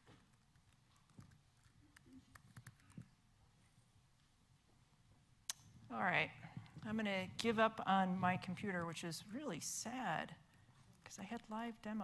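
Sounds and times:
laptop keys typing: 0:00.0 - 0:03.2.

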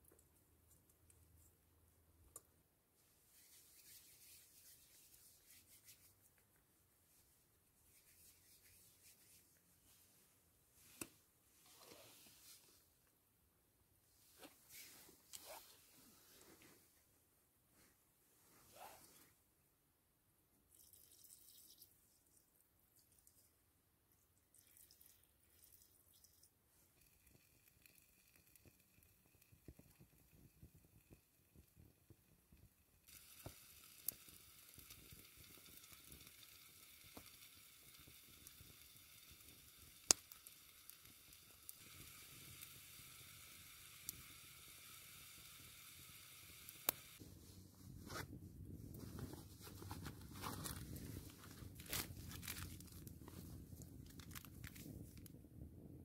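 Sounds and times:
wood fire hissing and popping: 0:27.3 - 0:47.2, 0:49.9 - 0:55.4
plastic packet crinkling: 0:50.4 - 0:53.2, 0:54.0 - 0:55.3.

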